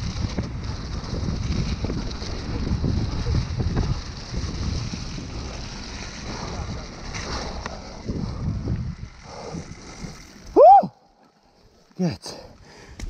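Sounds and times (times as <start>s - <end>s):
wind rushing over microphone: 0.0s - 10.9s
tyres rumbling over dirt: 0.0s - 12.2s
bike clicks and rattles: 0.0s - 13.0s.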